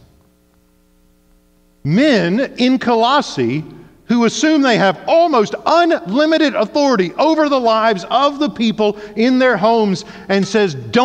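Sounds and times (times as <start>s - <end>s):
low electrical hum: 0.0s - 11.0s
man speaking: 1.9s - 11.0s.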